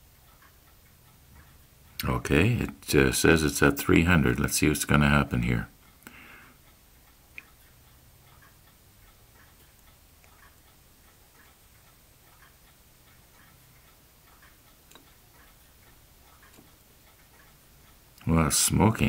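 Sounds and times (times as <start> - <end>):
faint low room hum: 0.0 - 19.0
faint regular ticking: 0.0 - 19.0.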